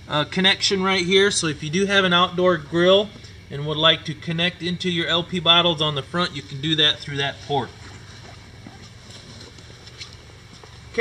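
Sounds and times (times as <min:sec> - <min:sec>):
low room hum: 0:00.0 - 0:11.0
footsteps on concrete: 0:07.7 - 0:11.0.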